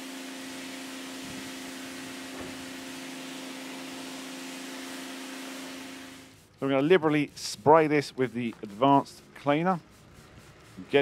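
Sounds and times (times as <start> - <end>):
pressure washer motor hum: 0.0 - 11.0
water jet hissing: 0.6 - 11.0.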